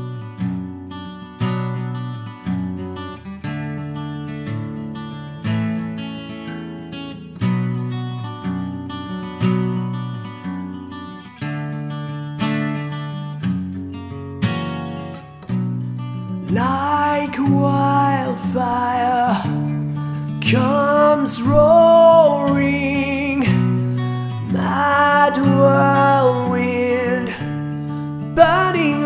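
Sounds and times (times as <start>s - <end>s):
acoustic guitar strumming chords: 0.0s - 29.0s.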